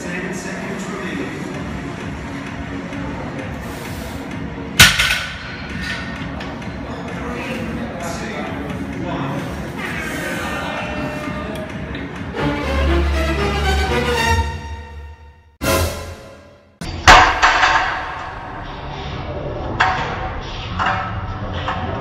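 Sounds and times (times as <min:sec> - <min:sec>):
background music: 0:00.0 - 0:19.4
loud bang: 0:04.8 - 0:05.6
indistinct voices: 0:05.7 - 0:12.4.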